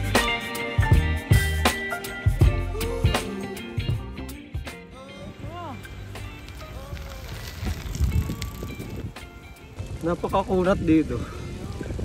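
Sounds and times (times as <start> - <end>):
background music: 0.0 - 12.0
wind rumbling on microphone: 5.1 - 12.0.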